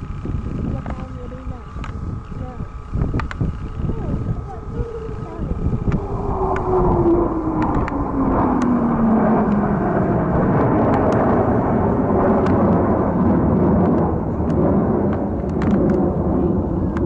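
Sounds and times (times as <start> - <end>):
jet roaring past: 3.9 - 17.0.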